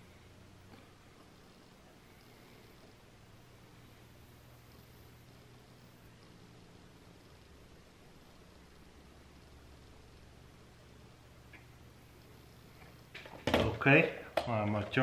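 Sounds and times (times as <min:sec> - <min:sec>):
faint low hum: 0:00.0 - 0:15.0.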